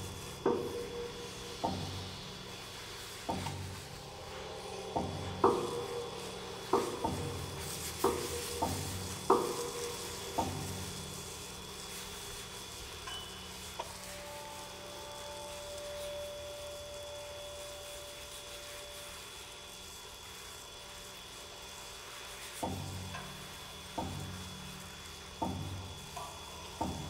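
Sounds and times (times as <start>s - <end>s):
quiet held tones: 0.0s - 27.0s
steady crackling hiss: 0.0s - 27.0s.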